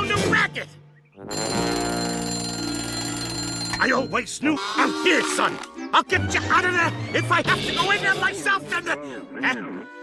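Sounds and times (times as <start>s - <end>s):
bell ringing: 1.3s - 4.4s.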